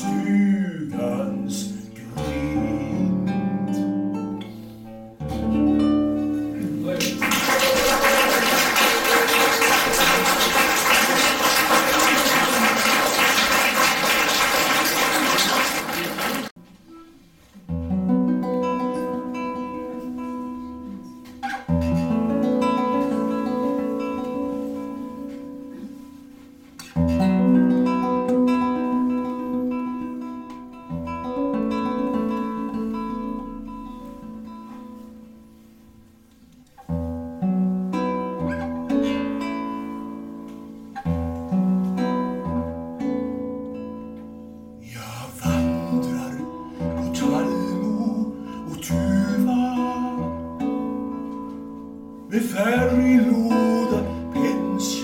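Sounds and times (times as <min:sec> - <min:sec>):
classical guitar plucked chords: 0:00.0 - 0:55.0
audience applauding: 0:06.6 - 0:16.6.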